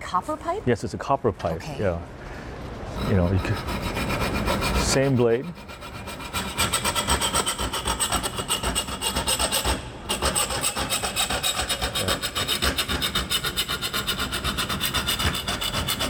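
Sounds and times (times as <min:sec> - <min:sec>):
hand saw cutting metal pipe: 0:03.0 - 0:16.0.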